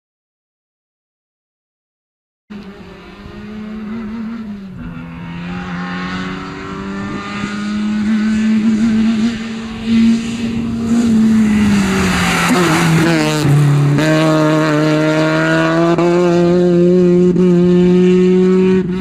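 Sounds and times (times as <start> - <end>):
rally car engine passing by: 2.5 - 19.0.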